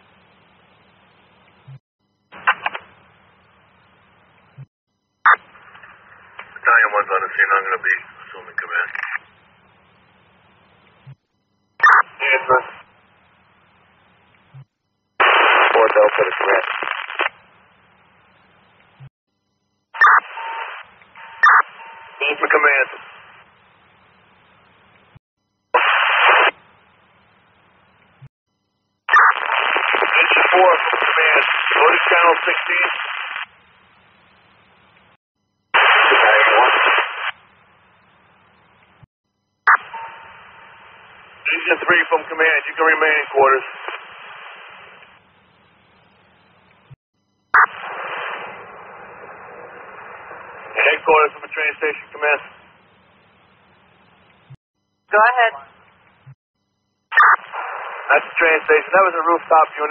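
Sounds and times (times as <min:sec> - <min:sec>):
garbled radio voice transmissions: 0:05.3 - 0:09.2, 0:11.8 - 0:12.9, 0:15.2 - 0:17.3, 0:21.4 - 0:23.4, 0:29.1 - 0:33.5, 0:35.8 - 0:37.3, 0:41.4 - 0:45.0, 0:50.0 - 0:52.6, 0:55.1 - 0:55.7, 0:57.2 - 0:59.9
faint hiss and hum: 0:05.4 - 0:19.6, 0:20.2 - 0:35.2, 0:35.8 - 0:39.0, 0:40.1 - 0:47.0, 0:47.7 - 0:54.6, 0:57.4 - 0:59.9.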